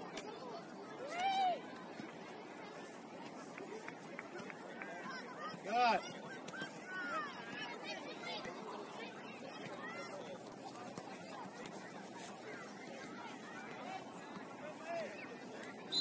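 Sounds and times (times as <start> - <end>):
outdoor background noise: 0.0 - 16.0.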